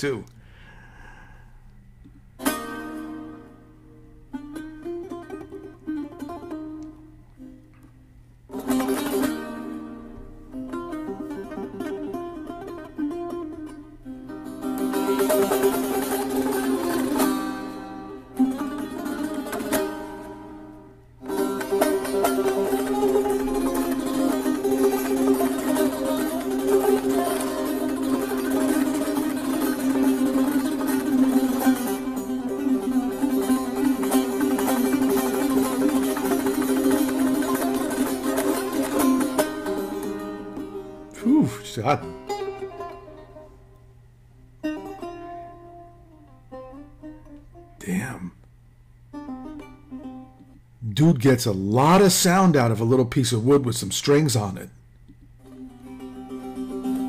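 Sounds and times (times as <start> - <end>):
lute plucked and strummed: 1.8 - 57.0.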